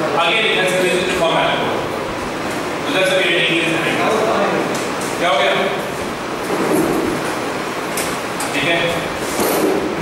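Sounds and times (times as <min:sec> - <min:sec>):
hiss-like background noise: 0:00.0 - 0:10.0.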